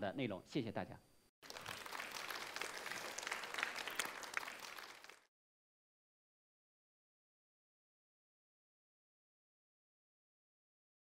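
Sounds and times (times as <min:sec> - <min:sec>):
audience applauding: 0:01.4 - 0:05.3.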